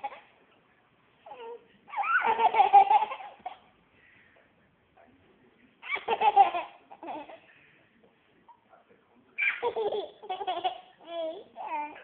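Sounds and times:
toddler laughing: 0:01.3 - 0:03.6, 0:05.8 - 0:07.4, 0:09.4 - 0:12.0.

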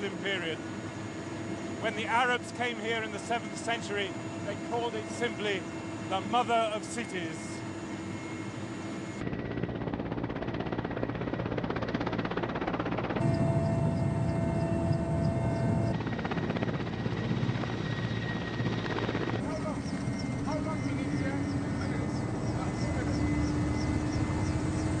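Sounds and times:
helicopter rotor chop: 0:00.0 - 0:25.0
turbine engine whine: 0:00.0 - 0:25.0.

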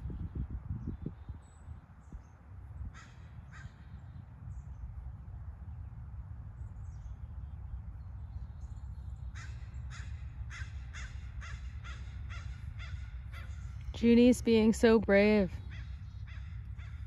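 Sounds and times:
steady low rumble: 0:00.0 - 0:17.0
bird calling: 0:08.6 - 0:14.4, 0:15.4 - 0:17.0.

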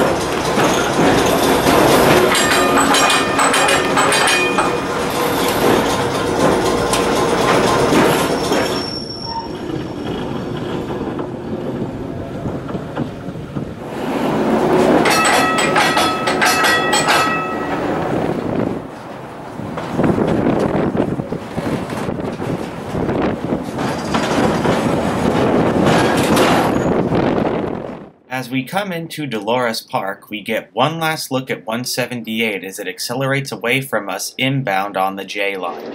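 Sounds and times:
wheels squealing and clattering: 0:00.0 - 0:27.7
streetcar rumbling on rails: 0:00.0 - 0:28.7.

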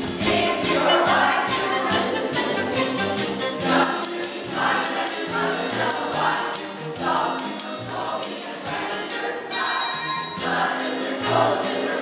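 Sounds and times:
children's chorus singing: 0:00.0 - 0:12.0
high percussion beat: 0:00.0 - 0:12.0.

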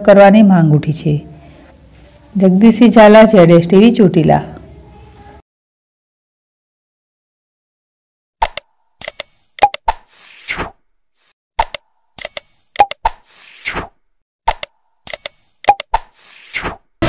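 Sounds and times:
mouse clicks: 0:14.5 - 0:16.2.

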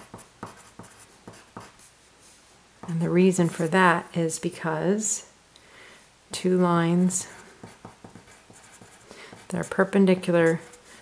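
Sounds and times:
pencil writing on paper: 0:00.0 - 0:01.8, 0:07.3 - 0:10.9.

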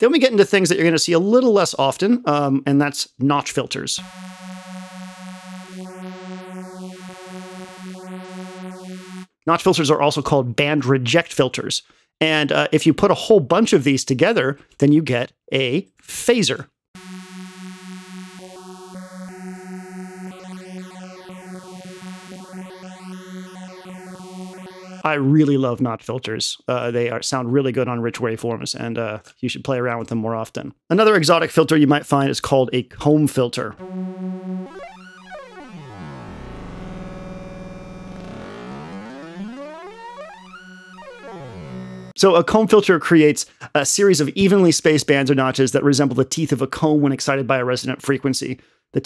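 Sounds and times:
buzzy synthesizer note with phaser sweep: 0:04.0 - 0:09.4, 0:17.0 - 0:25.1, 0:33.8 - 0:42.2.

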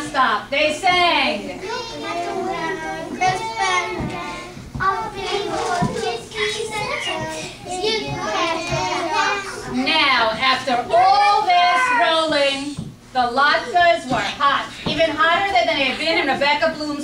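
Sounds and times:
young children singing together: 0:01.6 - 0:09.8.

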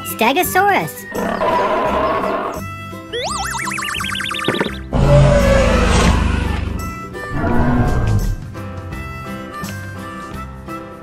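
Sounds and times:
children's background music: 0:00.0 - 0:04.9
warbling whistle rising: 0:03.2 - 0:08.3
rough noise: 0:04.8 - 0:08.5.

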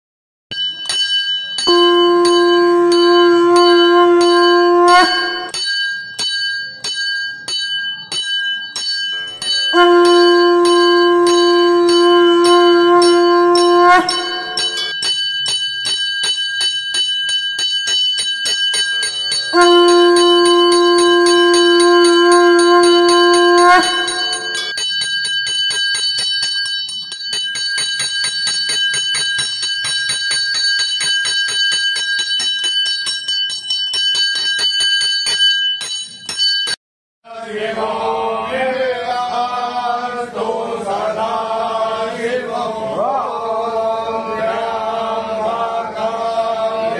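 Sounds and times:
temple bells ringing rapidly: 0:00.5 - 0:36.8
conch shell blasts: 0:01.6 - 0:05.6, 0:09.4 - 0:15.0, 0:19.3 - 0:24.9.

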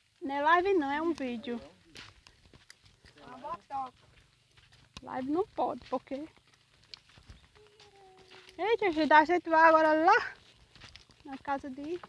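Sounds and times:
footsteps on sandy dirt road: 0:00.0 - 0:12.0
faint held call: 0:07.5 - 0:08.8.

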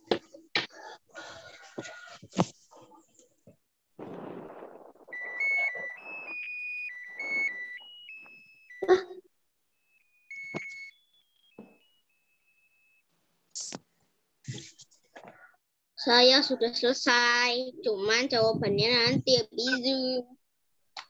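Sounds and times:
rustling noise: 0:01.5 - 0:08.1
electronic beeping melody: 0:04.5 - 0:09.0.

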